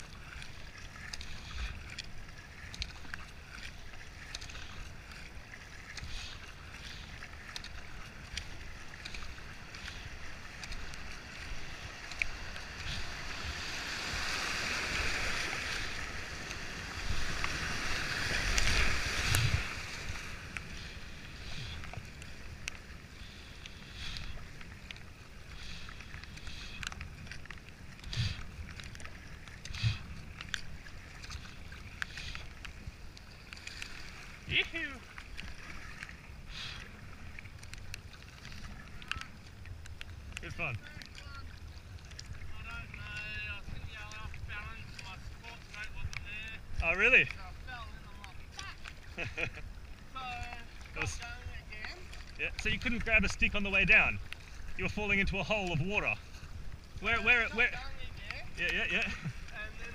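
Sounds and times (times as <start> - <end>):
kayak paddle splashing: 0.0 - 59.9
whitewater rushing: 5.9 - 22.4.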